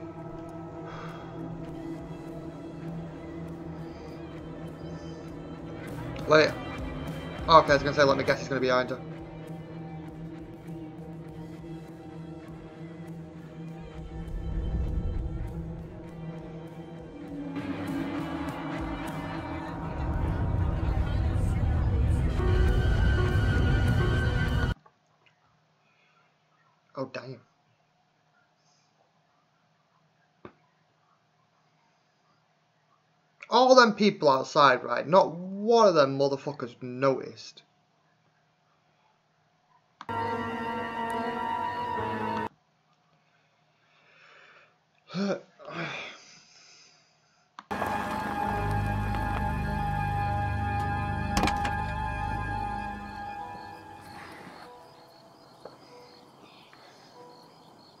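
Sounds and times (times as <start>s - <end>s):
horror film music: 0.0s - 24.8s, 40.1s - 42.5s, 47.7s - 58.0s.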